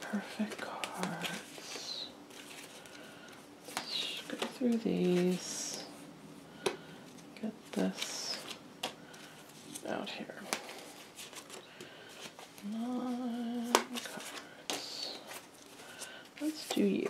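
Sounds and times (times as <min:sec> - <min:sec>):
person humming: 0:12.6 - 0:14.1.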